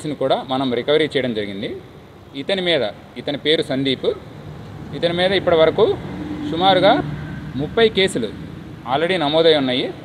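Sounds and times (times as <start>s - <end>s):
man talking: 0.0s - 4.3s, 4.9s - 10.0s.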